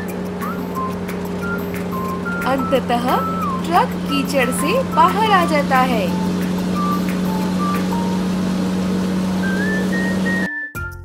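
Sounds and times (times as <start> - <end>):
backhoe loader engine rumble: 0.0 - 10.5.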